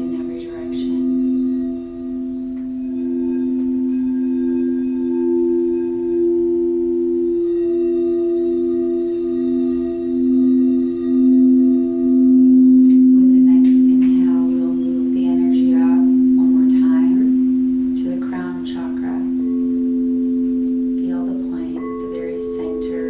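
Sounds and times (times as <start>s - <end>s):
singing bowl humming: 0.0s - 23.0s.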